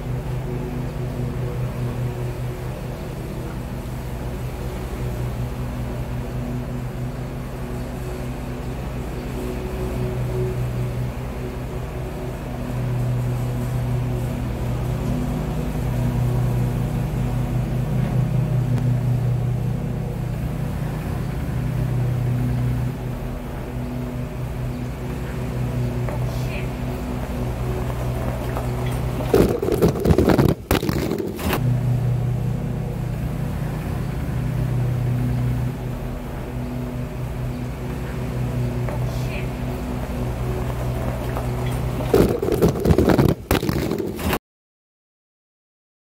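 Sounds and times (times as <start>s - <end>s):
car engine running: 0.0s - 44.4s.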